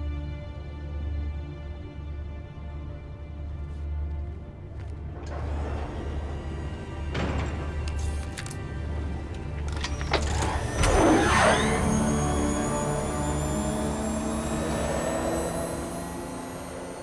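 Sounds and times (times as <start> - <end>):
film score sustained tones: 0.0 - 17.0.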